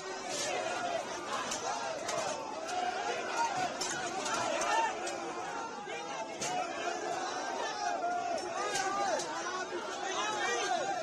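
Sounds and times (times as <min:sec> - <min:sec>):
crowd shouting: 0:00.0 - 0:11.0.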